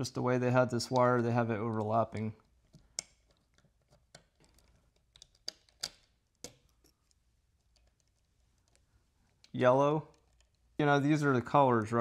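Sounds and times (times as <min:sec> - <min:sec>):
screwdriver clicks and taps: 0:01.7 - 0:10.6.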